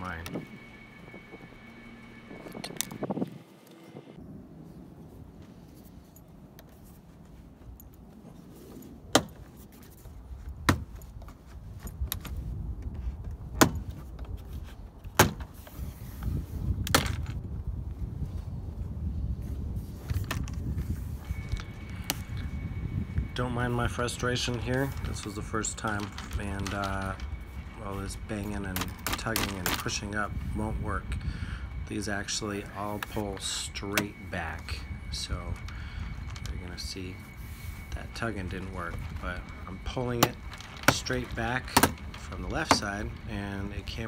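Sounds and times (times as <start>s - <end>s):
low rumbling handling noise: 0.0s - 44.0s.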